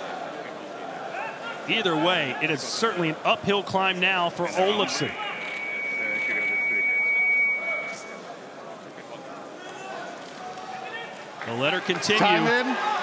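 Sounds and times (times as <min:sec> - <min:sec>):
arena crowd noise: 0:00.0 - 0:13.0
high-pitched whistle-like tone: 0:04.8 - 0:08.3.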